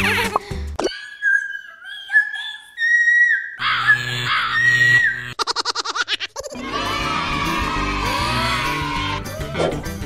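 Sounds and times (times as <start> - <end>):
shrill high-pitched scream: 1.3 - 5.4.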